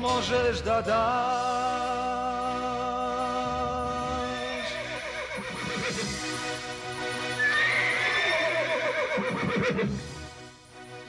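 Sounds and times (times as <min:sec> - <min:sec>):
background music: 0:00.0 - 0:11.0
horse whinnying: 0:04.3 - 0:06.4, 0:07.2 - 0:10.2.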